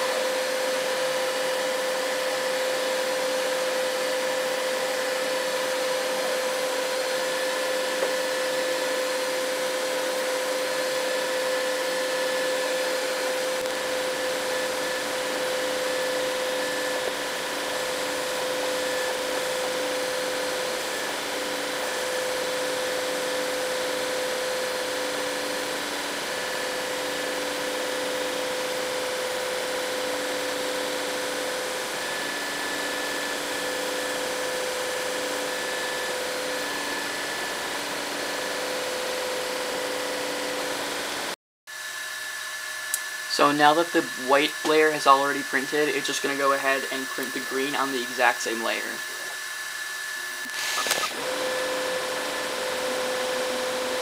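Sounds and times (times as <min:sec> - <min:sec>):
printer motor tones: 0:50.3 - 0:51.2.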